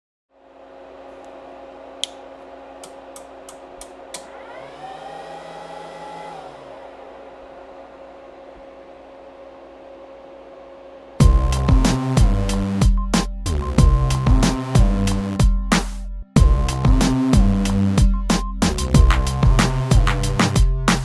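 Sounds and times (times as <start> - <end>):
cooling fans whirring: 0.3 - 12.7
rising held tone: 4.0 - 12.5.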